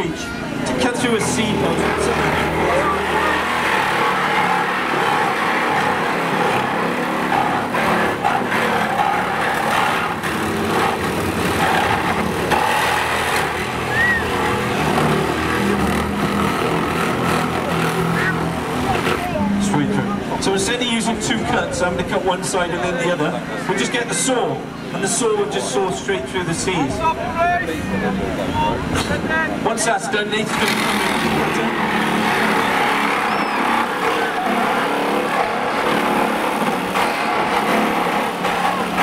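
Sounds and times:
small engine running: 0.0s - 20.8s, 30.2s - 39.0s
crowd chatter: 0.0s - 39.0s.

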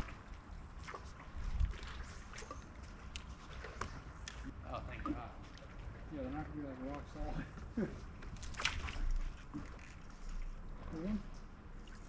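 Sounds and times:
wind rumble on microphone: 0.0s - 2.2s.

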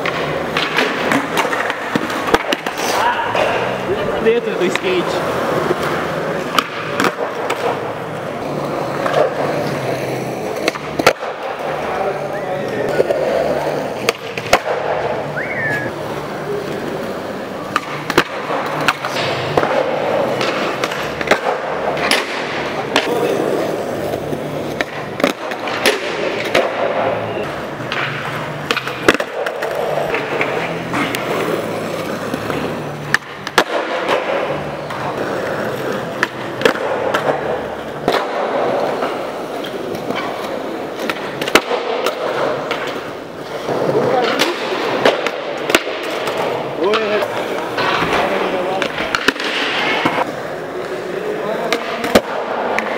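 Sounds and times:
skateboard wheels rolling on concrete: 0.0s - 52.9s
skateboard pops and landings: 33.1s - 34.5s, 41.0s - 42.9s.

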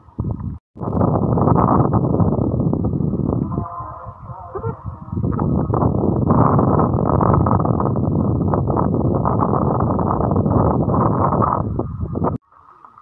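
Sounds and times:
wind buffeting microphone: 0.0s - 12.4s.

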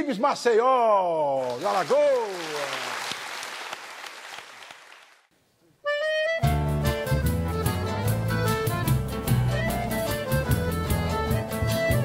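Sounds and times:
audience applause: 1.4s - 5.3s
held accordion note: 5.8s - 12.0s
band playing folk song: 5.9s - 12.0s.

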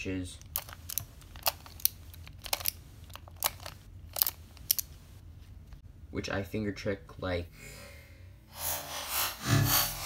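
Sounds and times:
plastic puzzle clicking: 0.4s - 4.9s.

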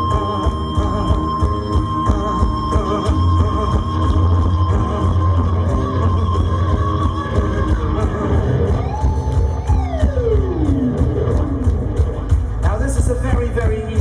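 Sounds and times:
heavy metal band playing live: 0.0s - 14.0s.

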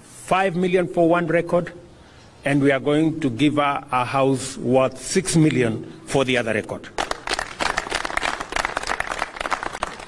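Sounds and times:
crowd applauding: 7.0s - 10.0s.

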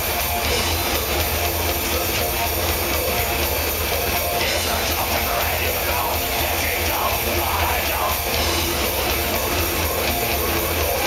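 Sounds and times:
live heavy metal band: 0.0s - 11.0s.

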